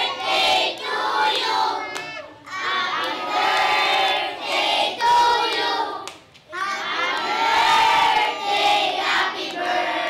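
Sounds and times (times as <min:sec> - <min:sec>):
children singing in unison: 0:00.0 - 0:10.0.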